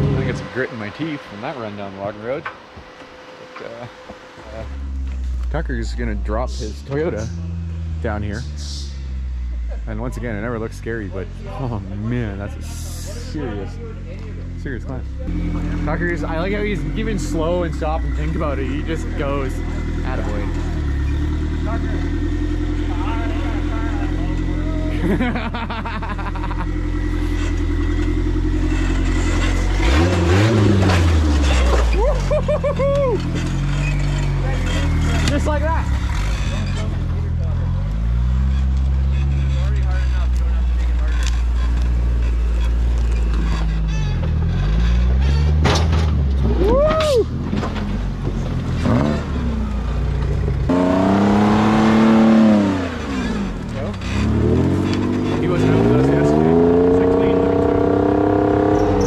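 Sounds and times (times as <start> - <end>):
engine revving hard: 0.0 - 2.4, 14.9 - 32.6, 33.2 - 46.8, 48.6 - 49.9, 50.6 - 59.0
engines revving in bursts: 0.0 - 13.8, 14.5 - 59.0.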